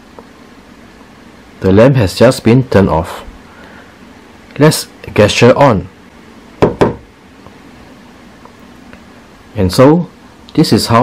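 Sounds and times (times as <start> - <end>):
hand knocking on lamp shade: 6.6 - 7.1.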